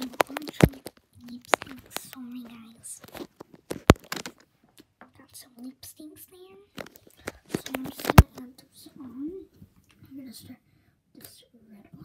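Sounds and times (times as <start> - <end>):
soft whispering: 0.0 - 3.2
clicks and rubbing on microphone: 0.0 - 4.9, 6.8 - 8.5.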